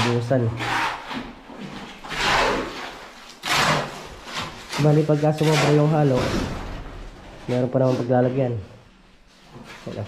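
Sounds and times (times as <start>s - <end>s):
shovel scraping wet concrete: 2.0s - 6.6s
man speaking: 7.5s - 8.8s.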